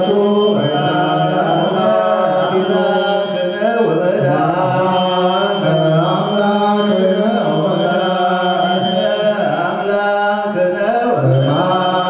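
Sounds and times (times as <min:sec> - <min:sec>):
men chanting a prayer: 0:00.0 - 0:12.0.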